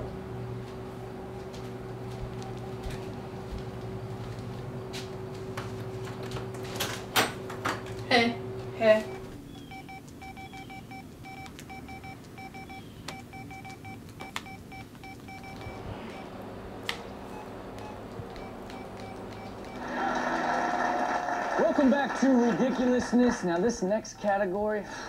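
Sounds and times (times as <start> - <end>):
phone key beeps: 9.1 - 16.3, 17.3 - 19.8
television voice: 20.0 - 25.0.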